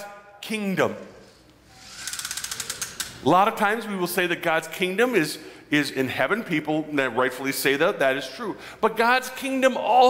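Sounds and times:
rapid mechanical clicks: 2.0 - 3.1.

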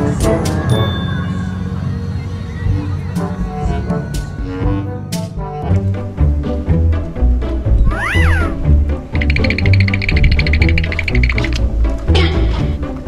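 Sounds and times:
background music with bass line: 2.7 - 13.0
cat meowing: 7.9 - 8.6
rapid high pulsing: 7.9 - 11.6.

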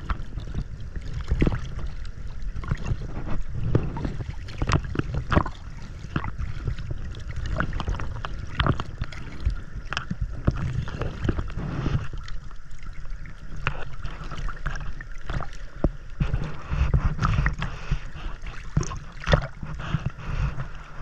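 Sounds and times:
finned feet kicking water: 0.0 - 21.0
water sloshing: 0.0 - 21.0.

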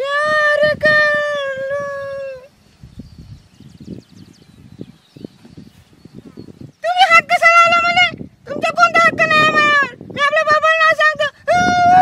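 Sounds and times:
faint scuffs and rustles: 5.0 - 6.4.

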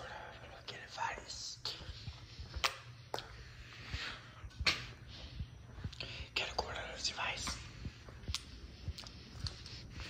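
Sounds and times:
person whispering: 0.0 - 2.4, 5.8 - 8.1.

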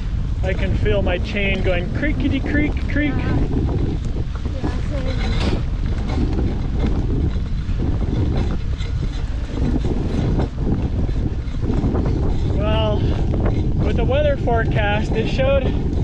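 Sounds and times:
bike chain clicking and creaking: 0.0 - 16.0
wind buffeting microphone: 0.0 - 16.0.

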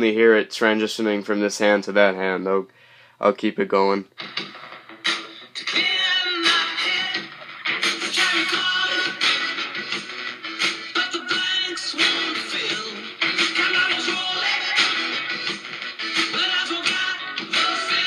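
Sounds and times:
song through small robot speakers: 4.1 - 18.0.

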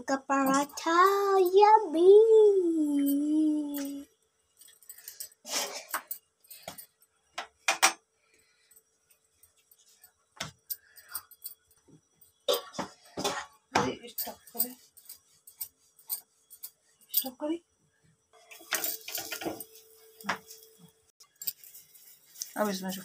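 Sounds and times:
bangles jingling: 14.1 - 17.4, 18.6 - 23.0.

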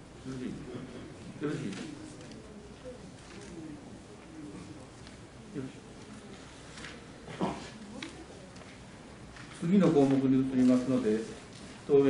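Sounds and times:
voices murmuring in a hall: 0.0 - 12.0.

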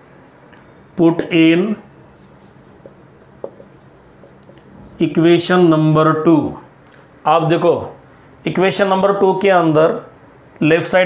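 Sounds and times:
marker writing on whiteboard: 2.1 - 5.2
marker tap on whiteboard: 2.8 - 4.6.

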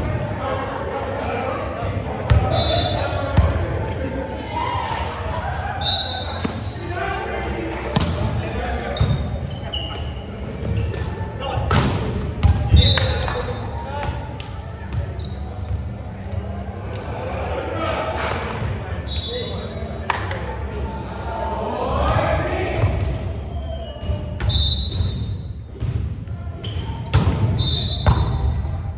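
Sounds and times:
players' voices echoing: 0.0 - 28.9
sneakers squeaking on court floor: 2.3 - 19.8, 21.9 - 28.9.

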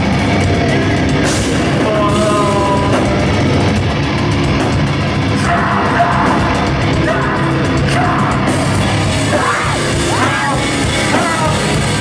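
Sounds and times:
hardcore band playing live: 0.0 - 12.0
shouted vocals: 5.4 - 11.8.

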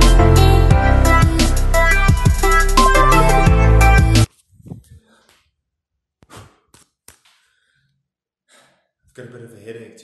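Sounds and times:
man breathing and sighing: 7.3 - 9.0.

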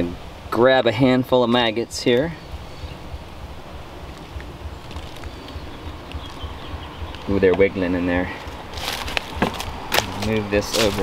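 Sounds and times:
wind rumbling on microphone: 1.8 - 11.0.

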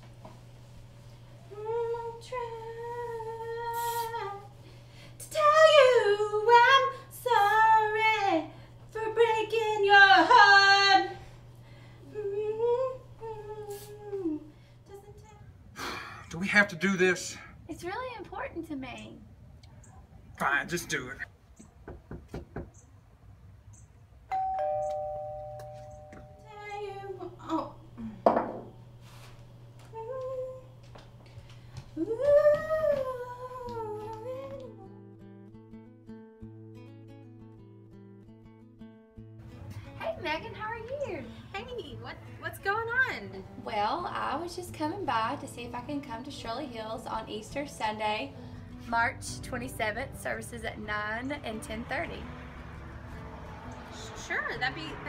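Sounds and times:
woman singing unaccompanied: 1.4 - 4.6, 5.2 - 11.2, 12.0 - 15.4, 26.1 - 28.2, 29.8 - 31.0, 31.9 - 35.2, 40.0 - 52.3
doorbell chime: 24.3 - 26.5
voice: 40.0 - 48.3, 48.9 - 52.2, 54.0 - 55.0.

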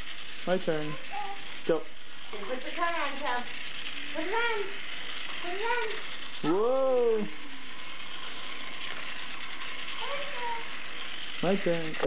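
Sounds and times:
toy car whirring: 0.0 - 12.0
small children calling: 0.5 - 2.9, 4.1 - 7.4, 9.7 - 11.5.

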